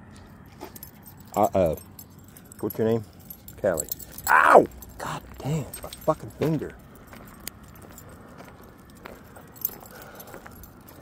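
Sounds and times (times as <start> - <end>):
small metal pieces jingling: 0.5 - 11.0.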